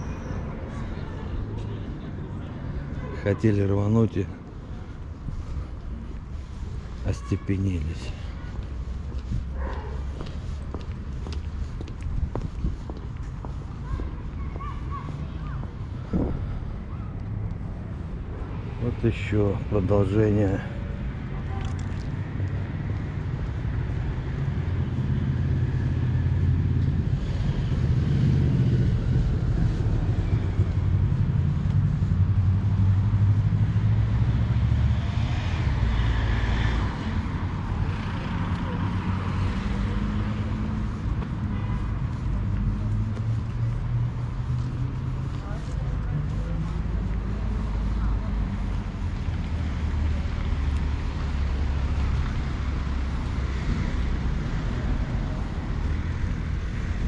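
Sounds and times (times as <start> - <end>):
faint indistinct voices: 0.0 - 3.6
traffic passing: 0.0 - 57.0
steady low rumble: 22.3 - 33.7.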